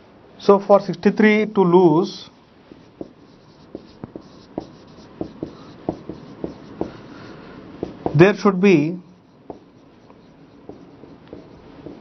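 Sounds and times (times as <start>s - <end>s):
marker writing on whiteboard: 2.8s - 12.0s.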